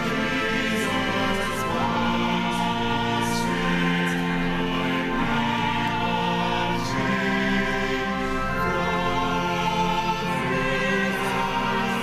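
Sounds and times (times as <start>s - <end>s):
church choir singing: 0.0s - 12.0s
pipe organ chords: 0.0s - 12.0s.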